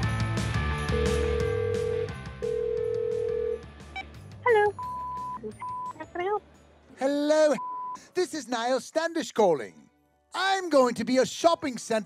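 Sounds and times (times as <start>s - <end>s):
background music: 0.0s - 12.0s
telephone ringing tone: 0.9s - 3.6s.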